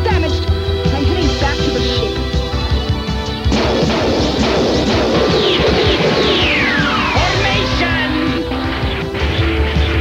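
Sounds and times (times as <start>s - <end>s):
cartoon soundtrack music: 0.0s - 10.0s
crash sound effect: 3.6s - 7.8s
falling whistle-like glides: 5.6s - 7.8s.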